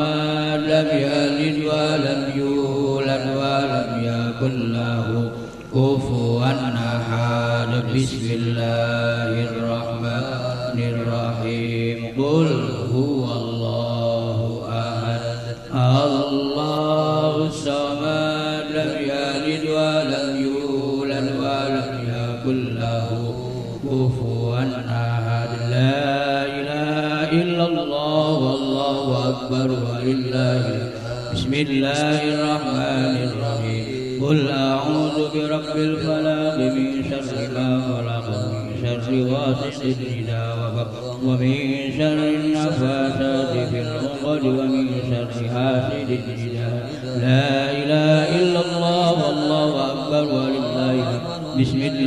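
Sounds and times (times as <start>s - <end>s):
men chanting through loudspeakers: 0.0s - 52.0s.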